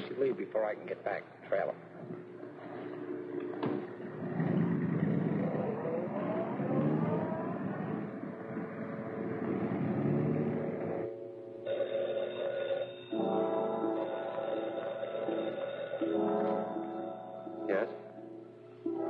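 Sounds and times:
car engine pulling away: 3.0 - 11.2.

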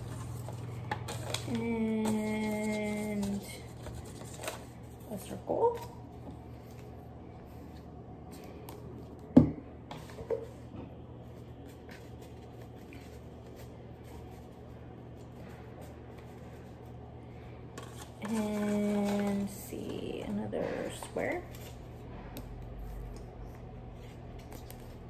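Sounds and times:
paper and cardboard tube handling: 0.0 - 5.9.

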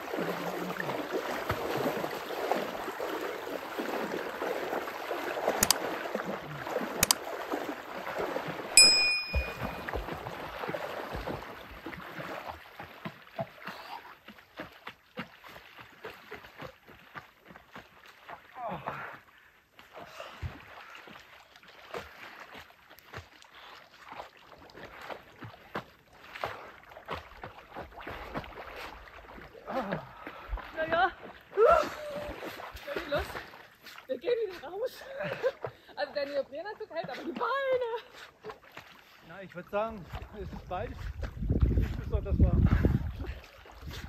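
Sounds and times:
lake water splashing and lapping: 0.0 - 44.0
people wading and swimming: 0.0 - 44.0.

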